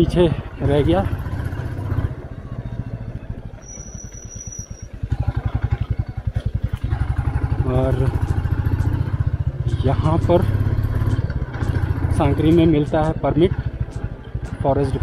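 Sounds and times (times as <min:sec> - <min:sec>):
motorcycle engine pulsing: 0:00.0 - 0:15.0
thin high whistle: 0:03.6 - 0:04.9.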